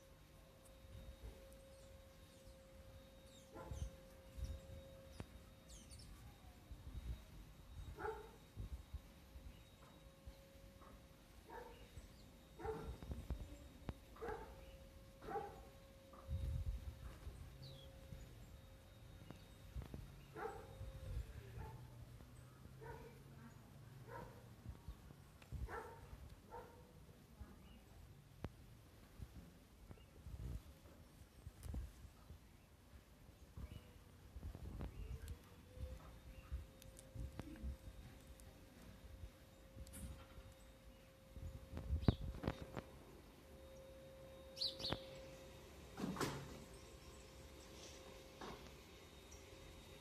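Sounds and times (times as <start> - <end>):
bird chirping: 1.1 - 7.2, 43.6 - 45.6
dog barking faintly: 7.9 - 8.5, 10.8 - 11.9, 12.6 - 13.4, 14.2 - 15.8, 20.3 - 22.0, 22.8 - 23.4, 24.0 - 24.6, 25.6 - 27.0.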